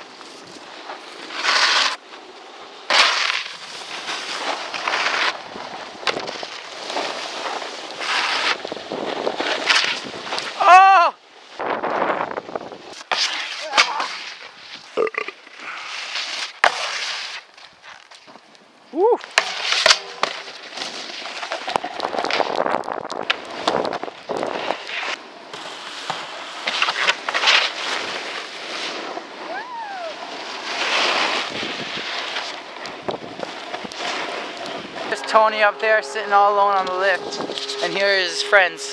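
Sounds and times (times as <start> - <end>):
snowboards scraping over snow: 0.0 - 38.9
vocal whoops: 10.6 - 11.2, 18.9 - 19.2, 29.5 - 30.2.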